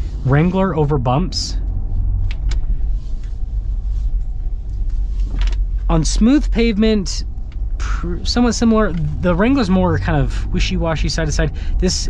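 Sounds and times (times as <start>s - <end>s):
car cabin engine rumble: 0.0s - 12.0s.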